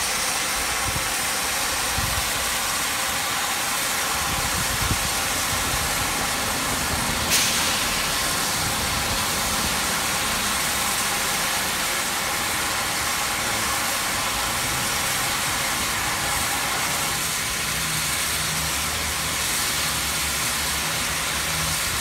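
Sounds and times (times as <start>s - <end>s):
steam locomotive hissing steam: 0.0s - 22.0s.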